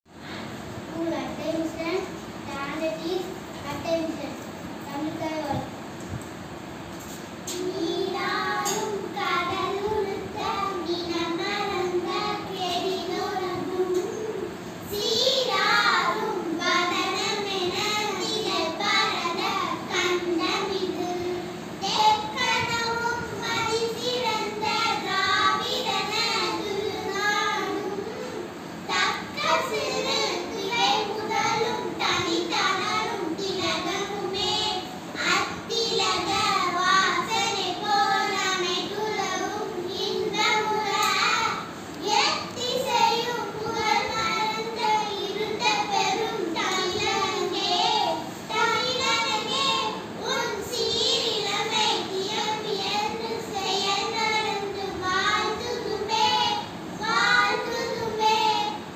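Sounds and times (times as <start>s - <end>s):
children singing a prayer: 7.1s - 58.9s.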